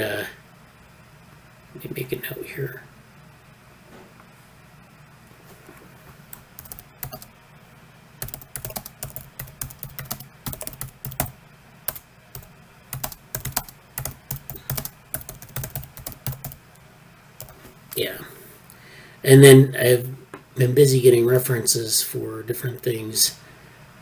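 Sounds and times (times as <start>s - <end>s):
computer keyboard typing: 6.3s - 7.3s, 8.2s - 16.6s, 17.4s - 17.6s.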